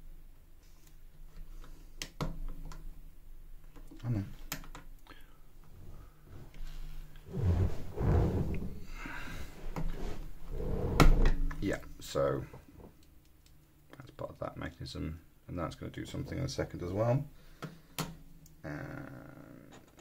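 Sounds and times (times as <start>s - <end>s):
indistinct voice: 18.6s - 19.8s.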